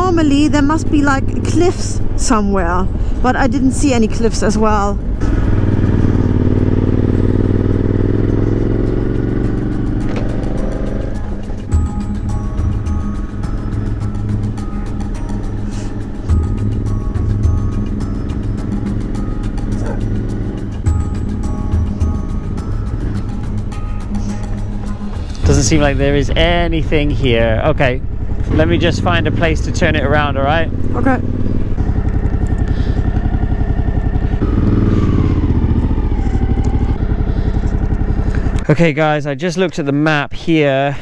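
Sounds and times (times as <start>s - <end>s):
background music: 0.0s - 36.9s
motorcycle engine running: 0.0s - 39.6s.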